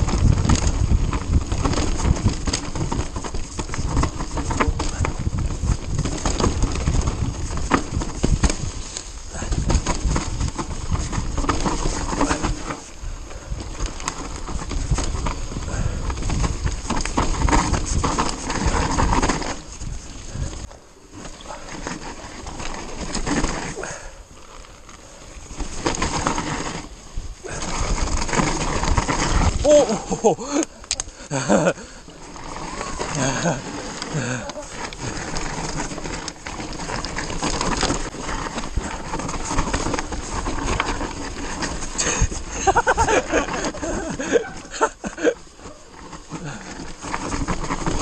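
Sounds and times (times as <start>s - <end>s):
wind on microphone: 0.0s - 20.8s
bike chain and frame rattling: 0.0s - 48.0s
bike tyres rumbling on dirt: 0.0s - 48.0s.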